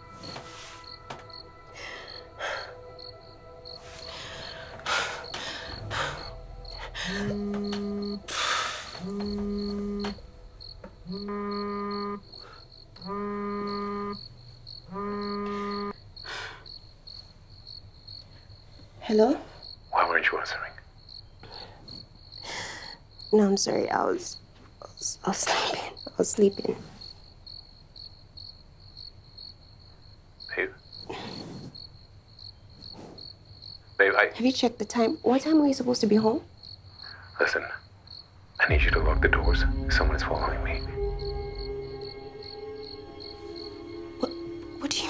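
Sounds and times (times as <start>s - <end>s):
crickets chirping: 0.0s - 45.0s
phone vibrating on a table: 9.0s - 16.0s.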